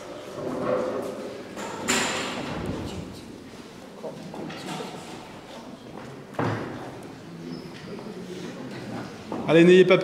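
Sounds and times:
crowd shuffling and stirring: 2.4 - 9.6.

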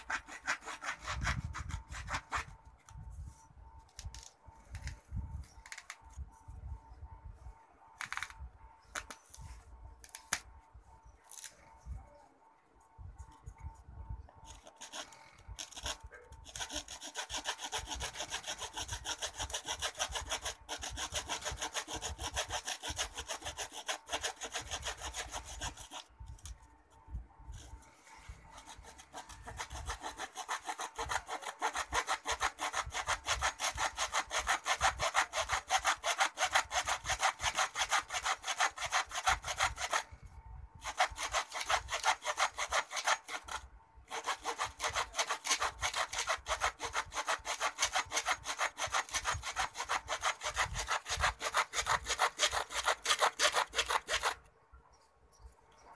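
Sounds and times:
blade sawing through plaster: 0.0 - 2.6, 14.4 - 26.5, 27.6 - 40.1, 40.8 - 54.4.

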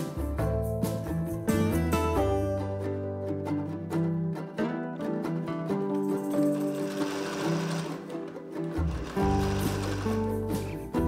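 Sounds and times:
instrumental background music: 0.0 - 11.0
sewing machine stitching: 6.4 - 10.8.

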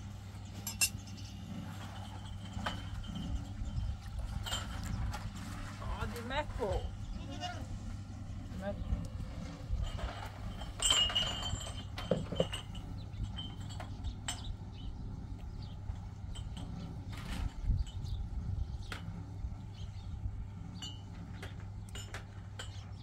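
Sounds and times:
steady low hum: 0.0 - 23.0
metal bowls clinking: 0.6 - 1.2, 9.8 - 14.5
wavering animal bleat: 7.0 - 7.9.

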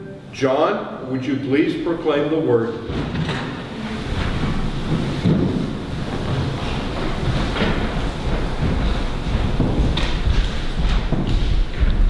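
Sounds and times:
low rumbling rustling noise: 1.4 - 12.0.

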